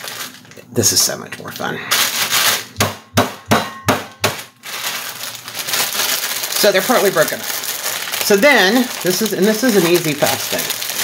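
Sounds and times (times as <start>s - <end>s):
crackly rustle: 0.0s - 2.6s, 4.6s - 11.0s.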